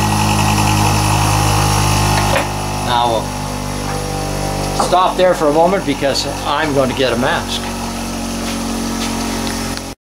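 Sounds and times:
motor-driven machine humming: 0.0s - 10.0s.

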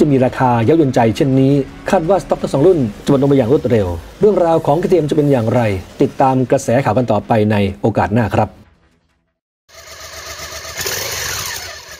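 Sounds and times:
motorcycle engine: 9.7s - 11.9s.

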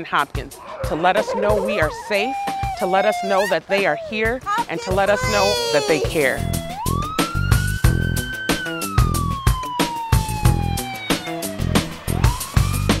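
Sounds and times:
music with drum beat: 0.0s - 13.0s
police siren wailing: 0.5s - 12.9s.

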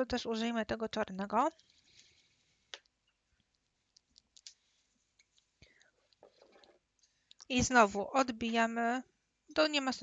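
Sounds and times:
faint clicks and taps of tools: 1.5s - 7.5s.

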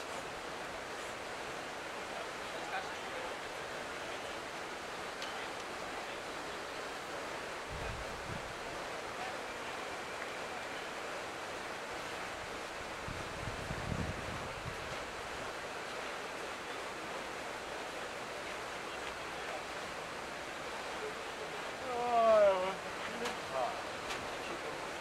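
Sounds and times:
open-air hiss: 0.0s - 25.0s
wind buffeting microphone: 7.6s - 8.6s, 12.4s - 15.5s.

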